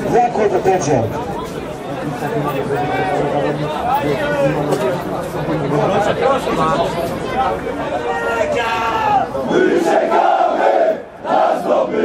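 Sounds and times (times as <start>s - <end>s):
crowd of men shouting: 7.4s - 12.0s.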